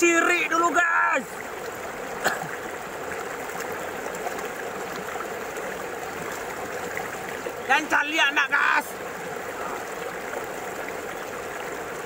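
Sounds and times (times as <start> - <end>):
running water: 0.0 - 12.0.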